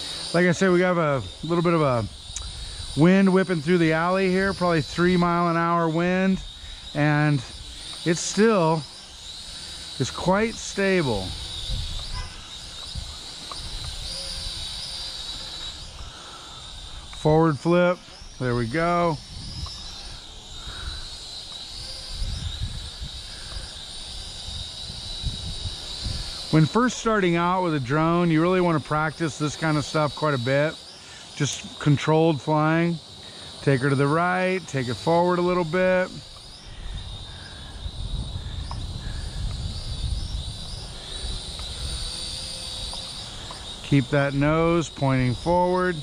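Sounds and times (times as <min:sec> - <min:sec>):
toy drone motors whining: 0:00.0 - 0:46.0
wind buffeting microphone: 0:10.0 - 0:16.1, 0:18.1 - 0:29.1, 0:36.2 - 0:46.0.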